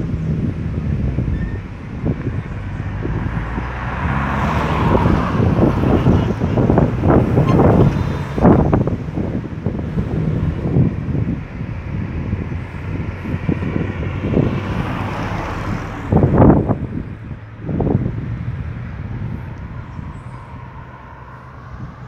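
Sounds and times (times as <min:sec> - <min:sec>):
cars driving past: 0:00.0 - 0:22.0
wind rumble on microphone: 0:00.0 - 0:22.0.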